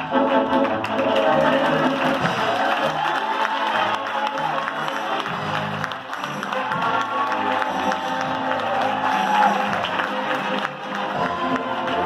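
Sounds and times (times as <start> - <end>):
live band music: 4.2 - 12.0.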